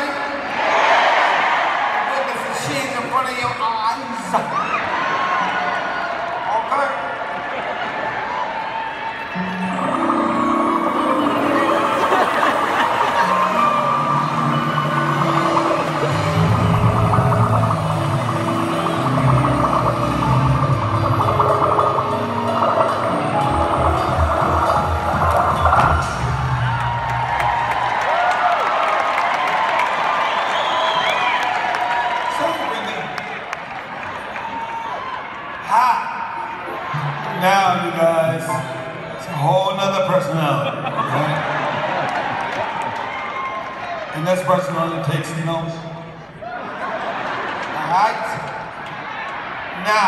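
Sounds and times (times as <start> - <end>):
audience noise: 0.0 - 50.0
live band music: 9.3 - 27.4
bass line: 9.5 - 27.8.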